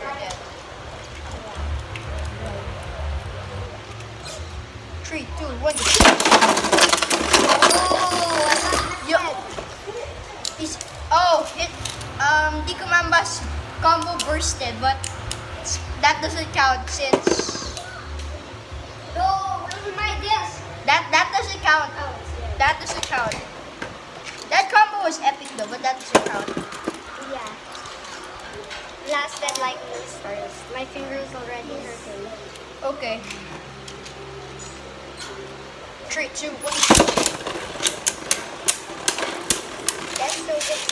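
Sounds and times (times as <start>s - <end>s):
children talking: 0.0s - 40.9s
spinning tops ripped from launchers: 5.7s - 8.9s, 36.6s - 40.9s
spinning tops clattering: 5.7s - 9.2s, 36.7s - 40.9s.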